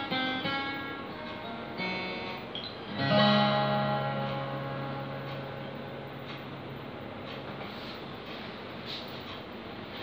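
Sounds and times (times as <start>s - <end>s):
acoustic guitar chord ringing: 0.0s - 7.1s.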